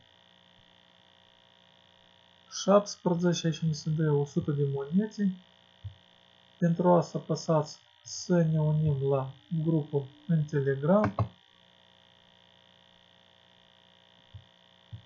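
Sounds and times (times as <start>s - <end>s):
faint electrical hum: 0.0s - 15.0s
man talking: 2.5s - 5.4s, 6.6s - 11.3s.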